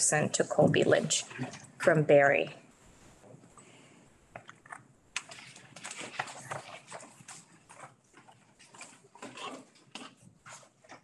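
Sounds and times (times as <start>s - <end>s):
rustling: 1.2s - 11.0s.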